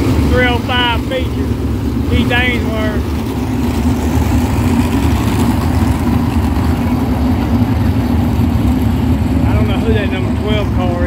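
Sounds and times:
race car engines droning: 0.0 - 11.0.

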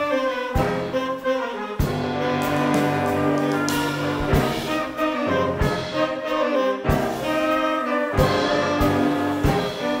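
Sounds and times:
brass band playing pop tune: 0.0 - 10.0.

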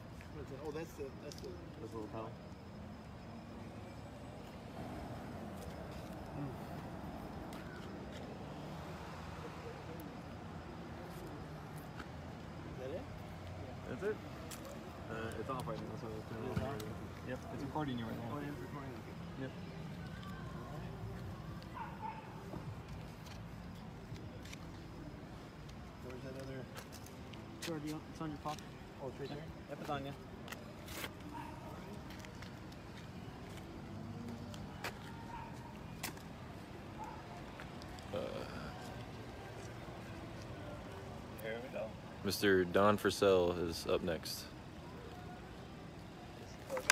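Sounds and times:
city street traffic hum: 0.0 - 46.9
indistinct voices talking: 0.0 - 46.9.

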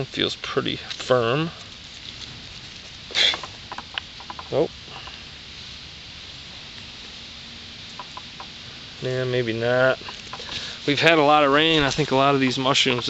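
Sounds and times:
faint clicks and rustles: 0.7 - 5.2, 9.9 - 13.0.

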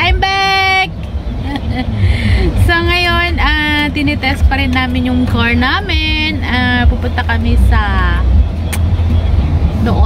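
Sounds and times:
car cabin road noise: 0.0 - 10.0.

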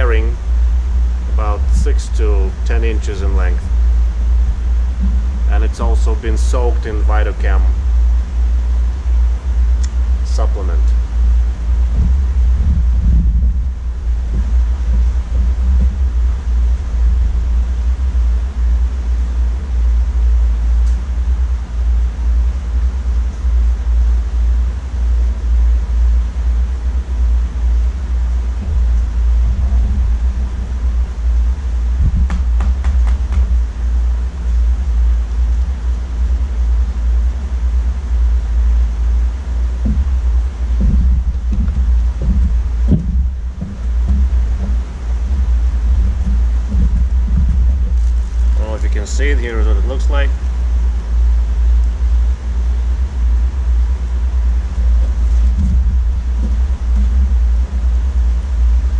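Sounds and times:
water pump rumble and hum: 0.0 - 58.9.

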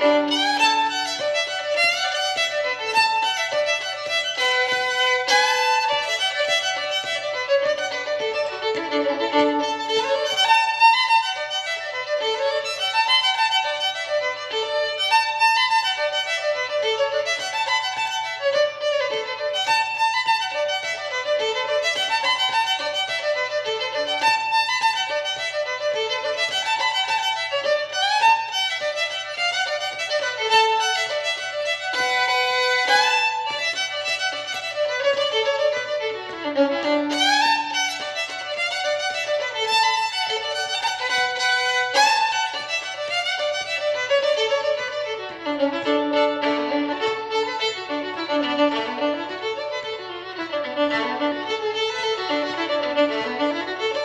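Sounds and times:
solo fiddle playing quick notes: 0.0 - 54.0.

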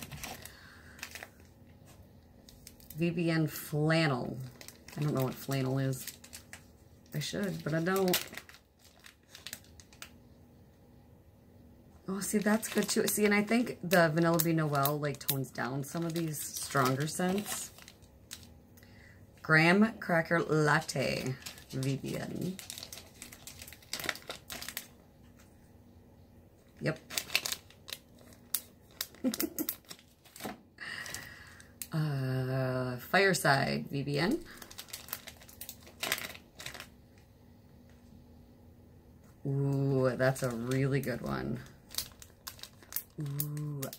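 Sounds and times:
plastic bag crinkling: 0.0 - 10.3, 12.1 - 25.5, 26.6 - 31.9, 34.2 - 37.3, 39.6 - 43.9
plastic package clicks: 22.6 - 24.9, 41.9 - 43.9.

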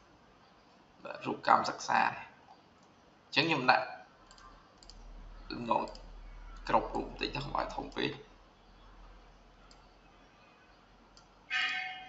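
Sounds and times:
faint room noise: 0.0 - 12.0
computer mouse click: 4.2 - 5.0, 5.8 - 6.7, 9.7 - 9.9.

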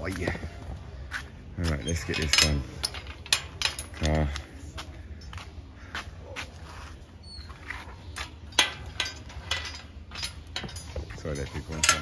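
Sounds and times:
rusty steel gate clicking and knocking: 1.7 - 4.4, 8.4 - 12.0.

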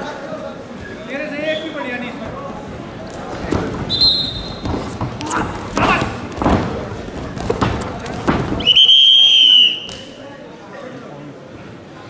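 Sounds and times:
voices calling out in hall: 0.0 - 12.0
bodies thudding on wrestling mat: 3.1 - 8.7.

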